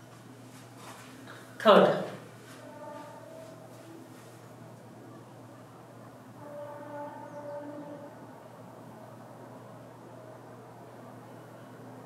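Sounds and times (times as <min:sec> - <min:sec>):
distant train horn: 0:02.5 - 0:04.0, 0:06.3 - 0:09.2.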